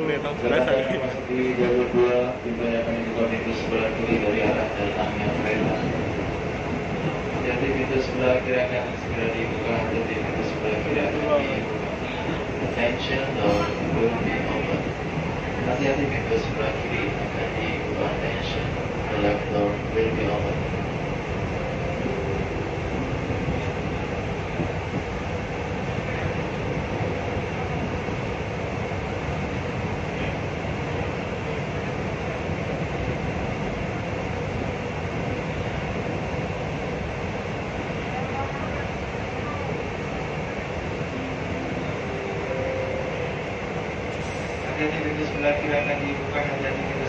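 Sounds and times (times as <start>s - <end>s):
train wheels rumbling on track: 0.0s - 47.0s.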